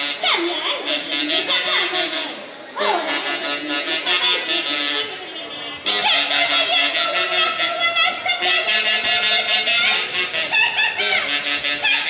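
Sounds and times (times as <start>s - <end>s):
band with reed wind instruments: 0.0s - 12.0s.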